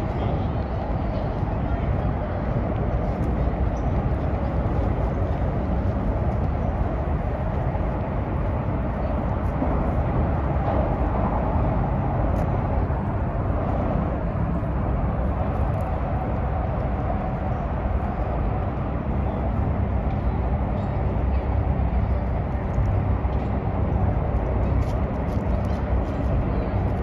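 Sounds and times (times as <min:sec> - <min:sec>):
road traffic rumble: 0:00.0 - 0:27.0.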